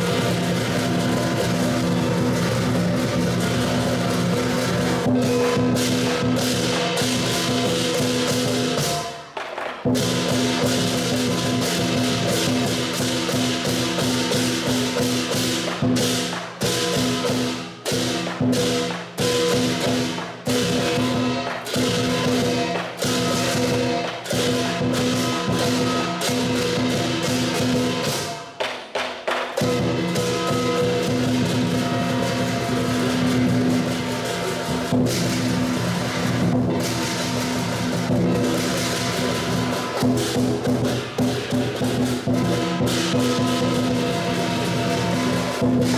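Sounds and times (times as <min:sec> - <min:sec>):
heavy accented strikes: 0:00.0 - 0:28.5, 0:29.6 - 0:45.9
cymbal clashes: 0:00.0 - 0:28.6, 0:29.5 - 0:45.9
drum beating: 0:00.0 - 0:45.9.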